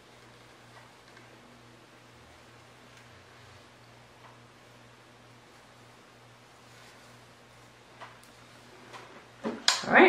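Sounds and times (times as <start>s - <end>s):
faint steady hum: 0.0s - 10.0s
hands handling hair: 6.5s - 9.7s
woman speaking: 9.8s - 10.0s.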